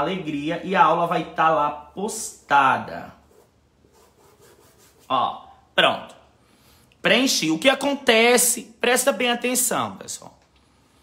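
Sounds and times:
paintbrush rubbing on cloth: 2.8s - 5.3s.

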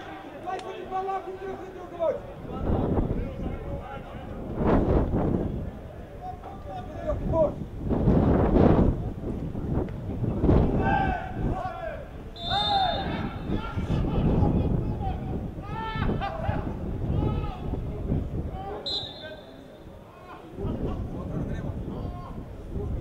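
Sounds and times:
players shouting: 10.7s - 17.7s
referee whistle blasts: 12.4s - 13.5s, 18.8s - 19.9s.

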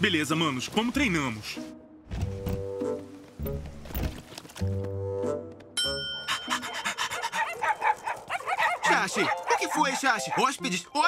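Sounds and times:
desk service bell ringing: 5.8s - 6.3s
dogs yipping and whining: 6.2s - 10.5s
dogs panting: 6.2s - 10.6s.

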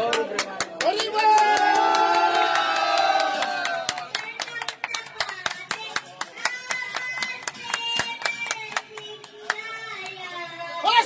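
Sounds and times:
crowd clapping in rhythm: 0.0s - 10.3s.

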